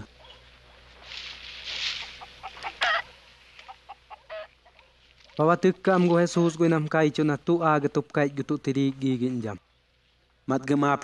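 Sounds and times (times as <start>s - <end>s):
chickens clucking: 1.9s - 5.0s.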